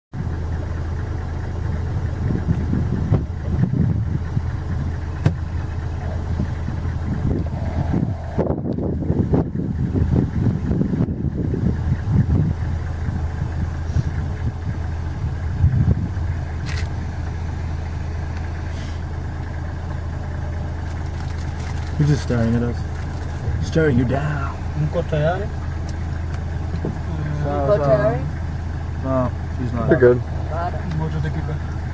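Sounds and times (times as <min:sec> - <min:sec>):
vehicle engine idling: 0:00.1 - 0:31.9
low rumbles on microphone: 0:01.6 - 0:18.4.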